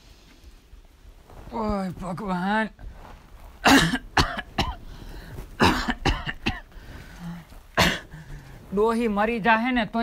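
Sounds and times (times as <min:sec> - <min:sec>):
woman coughing: 0:03.6 - 0:04.8, 0:05.6 - 0:06.7, 0:07.8 - 0:08.1.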